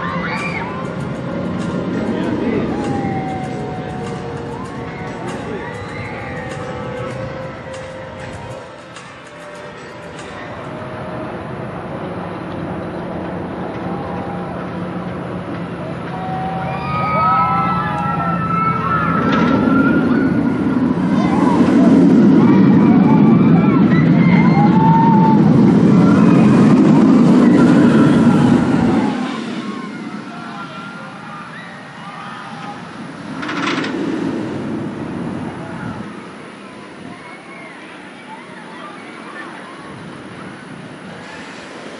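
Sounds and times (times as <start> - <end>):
roller coaster train rumbling: 0.0 - 41.9
riders screaming: 16.1 - 32.8.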